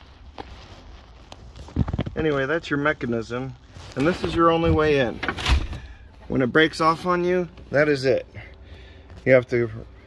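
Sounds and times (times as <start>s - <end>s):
faint rustling: 0.0s - 10.0s.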